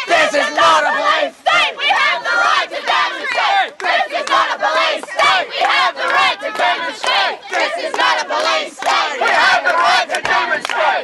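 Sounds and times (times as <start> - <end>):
crowd shouting slogans: 0.0 - 11.0.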